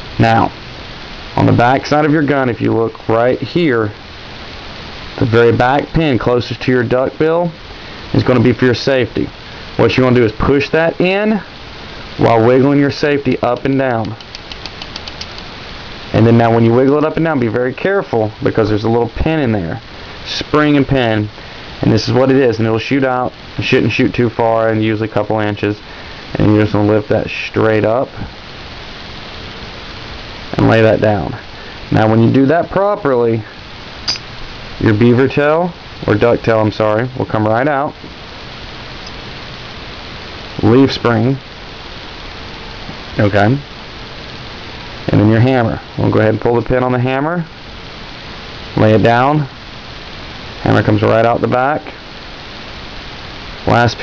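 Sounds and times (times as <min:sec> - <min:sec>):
steady hiss: 0:00.0 - 0:54.0.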